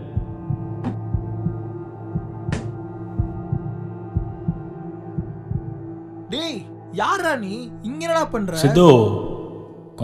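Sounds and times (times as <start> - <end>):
heartbeat thumps: 0.0 - 5.9.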